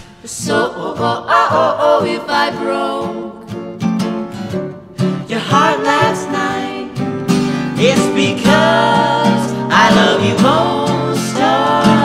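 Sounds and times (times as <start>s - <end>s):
vocal harmony singing: 0.0s - 3.8s, 5.0s - 12.0s
acoustic guitar strumming: 0.0s - 12.0s
piano: 2.2s - 12.0s.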